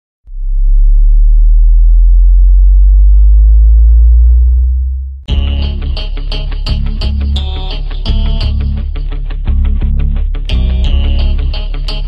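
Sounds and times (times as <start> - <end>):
deep synthesized bass drone: 0.2 - 12.0.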